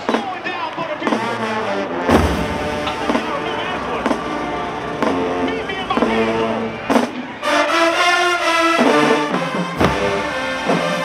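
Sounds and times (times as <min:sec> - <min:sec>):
brass chords: 0:01.1 - 0:11.0
bass drum hit: 0:02.1 - 0:05.4
drum strikes: 0:02.1 - 0:07.2.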